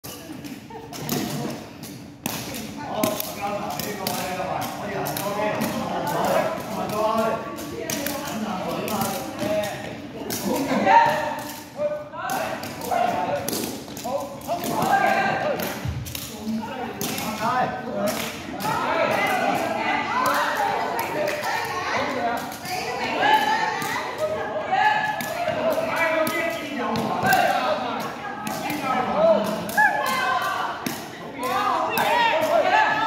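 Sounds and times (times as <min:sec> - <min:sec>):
background chatter of voices: 0:00.0 - 0:33.0.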